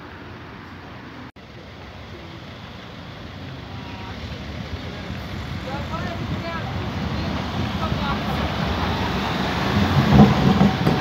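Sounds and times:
tram rumble: 0:00.0 - 0:11.0.

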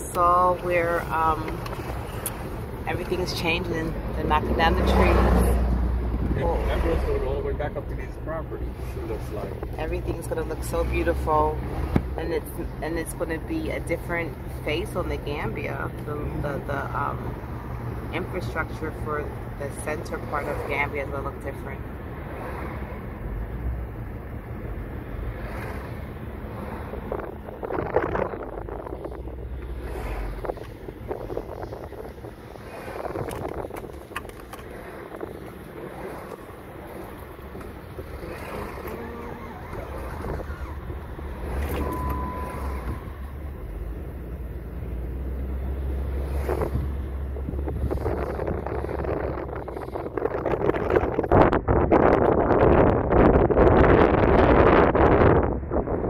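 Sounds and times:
wind noise: 0:00.0 - 0:07.1, 0:25.3 - 0:44.3, 0:45.8 - 0:56.0
engine and tyre rumble: 0:00.0 - 0:56.0
short beep: 0:41.6 - 0:43.3.

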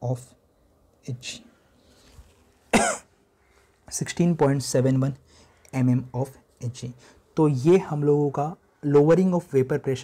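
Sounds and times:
loud cough: 0:02.7 - 0:03.1.

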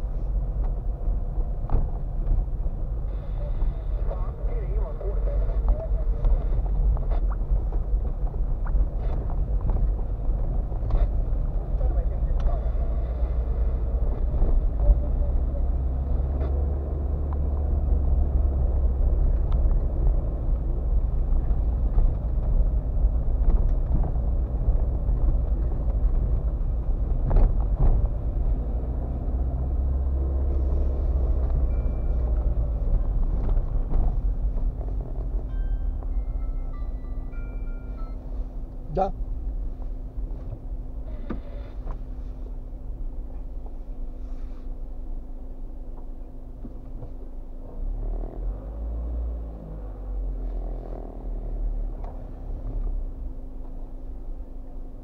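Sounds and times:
tyre and engine rumble: 0:00.0 - 0:55.0.

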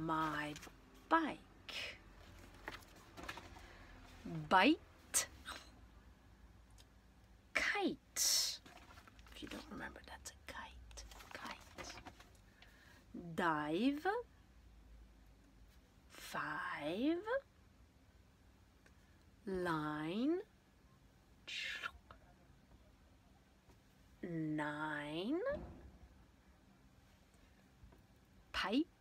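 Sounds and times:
soft whispering voice: 0:07.6 - 0:12.3, 0:21.4 - 0:23.4.

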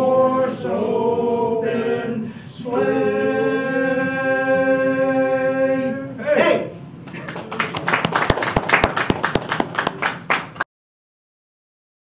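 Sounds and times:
crowd clapping: 0:07.1 - 0:10.7.

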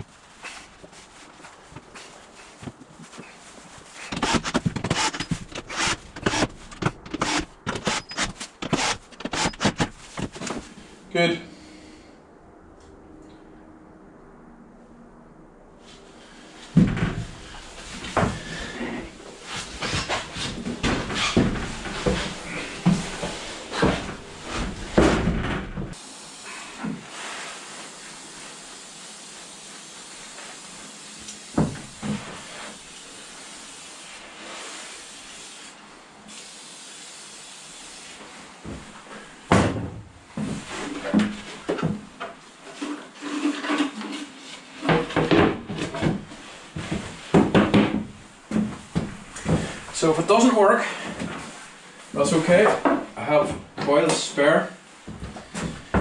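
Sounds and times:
steady hiss: 0:25.9 - 0:39.6.

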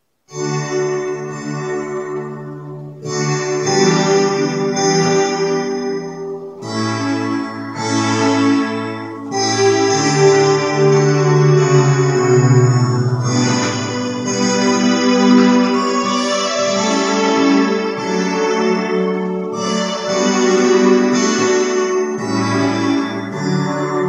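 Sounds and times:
electronic keyboard organ chords: 0:00.3 - 0:24.0.

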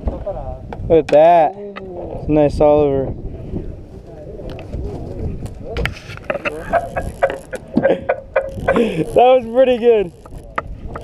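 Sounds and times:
boat engine rumble: 0:01.6 - 0:11.0
faint voices: 0:01.6 - 0:11.0
sea: 0:01.6 - 0:11.0
fishing tackle clicks and knocks: 0:05.8 - 0:11.0.

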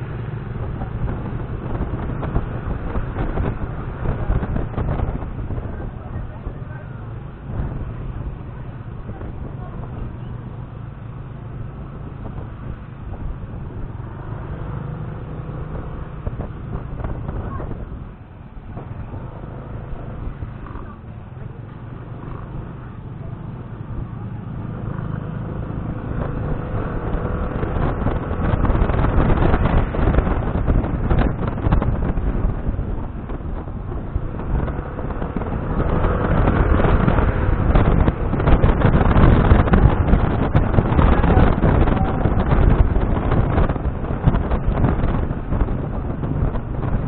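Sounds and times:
wind on microphone: 0:00.0 - 0:47.0.

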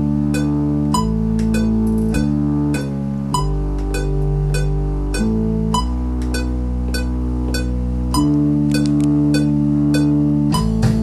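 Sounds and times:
steady ticking beat: 0:00.0 - 0:11.0
synthesizer bass notes: 0:00.0 - 0:11.0.

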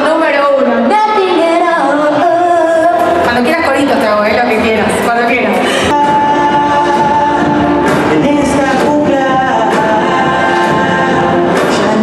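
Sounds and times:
live band music: 0:00.0 - 0:12.0
person singing long notes: 0:05.8 - 0:12.0.

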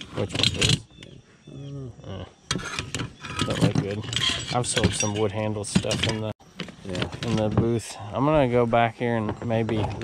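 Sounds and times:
metal tools clattering in basket: 0:02.7 - 0:06.3.

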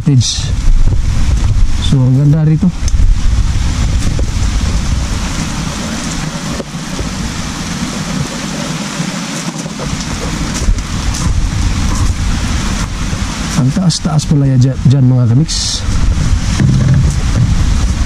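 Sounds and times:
steady rain hiss: 0:00.0 - 0:18.0
wind buffeting the microphone: 0:00.0 - 0:18.0.

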